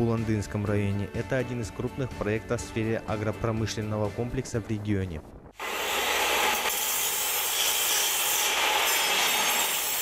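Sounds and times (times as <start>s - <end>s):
power tool grinding metal: 5.6s - 10.0s.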